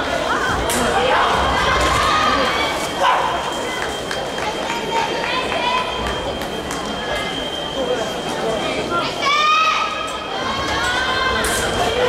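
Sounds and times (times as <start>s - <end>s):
many voices calling and shouting: 0.0s - 12.0s.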